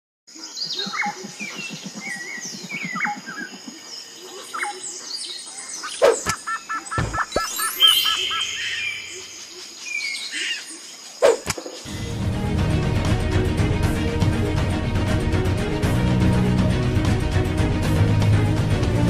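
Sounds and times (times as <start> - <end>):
birds chirping: 0.3 - 12.1.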